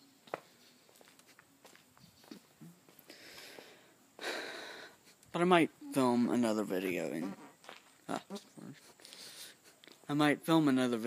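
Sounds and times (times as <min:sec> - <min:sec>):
faint footsteps: 0:00.0 - 0:04.4, 0:06.8 - 0:10.1.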